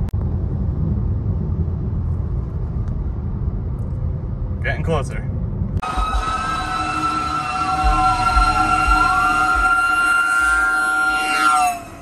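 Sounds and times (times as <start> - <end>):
fire engine air horn: 6.4 - 12.0.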